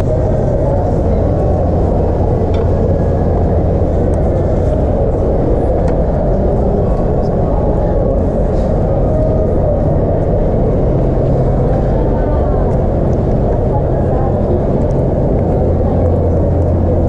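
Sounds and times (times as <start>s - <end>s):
muffled low rumble: 0.0s - 17.0s
murmur of voices: 0.0s - 17.0s.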